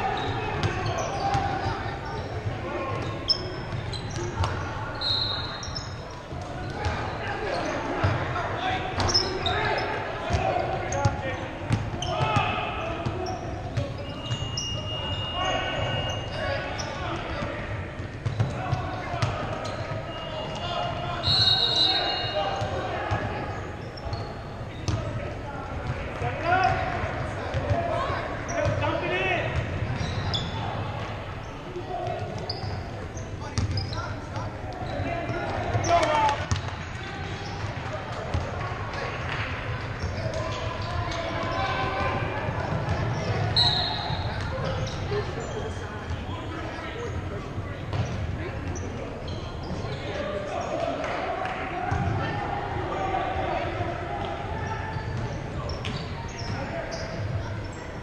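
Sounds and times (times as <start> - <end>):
people shouting and talking: 0.0 - 58.0.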